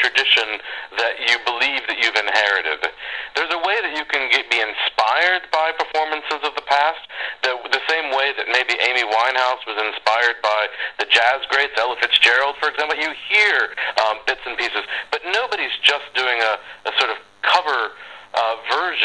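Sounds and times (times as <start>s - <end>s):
person talking over radio: 0.0s - 19.0s.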